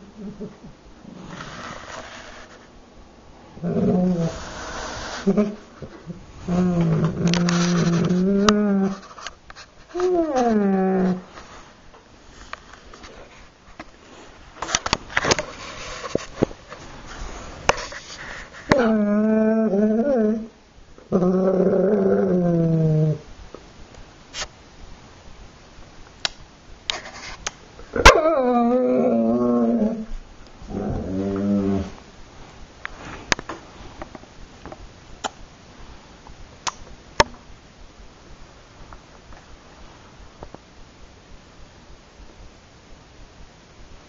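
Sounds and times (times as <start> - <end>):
dog whining: 3.6 - 9.0, 9.9 - 11.3, 18.7 - 23.2, 27.9 - 32.0.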